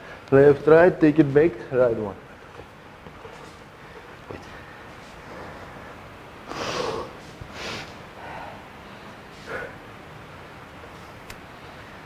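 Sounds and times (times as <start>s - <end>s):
man breathing hard: 3.8s - 9.9s.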